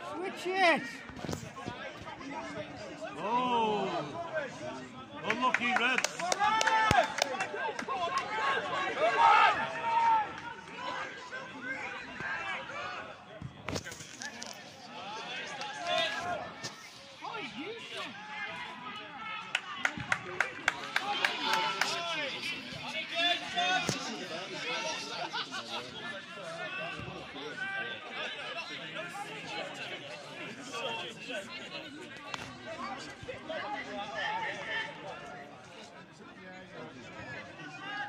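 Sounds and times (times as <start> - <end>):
crowd shouting and chatter: 0.0 - 38.0.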